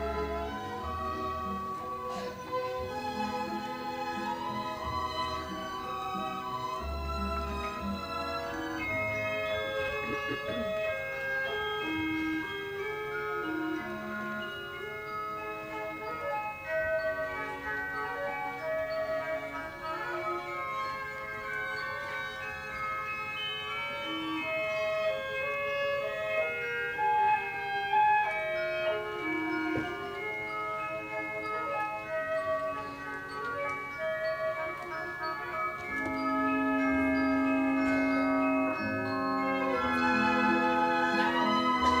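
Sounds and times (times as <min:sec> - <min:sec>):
orchestral ballet music: 0:00.0 - 0:42.0.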